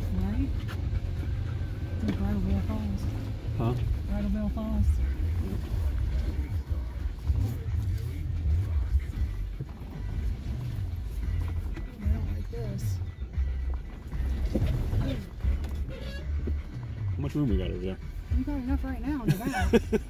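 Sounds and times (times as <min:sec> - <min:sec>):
vehicle engine rumbling: 0:00.0 - 0:20.0
faint voices: 0:03.6 - 0:10.4.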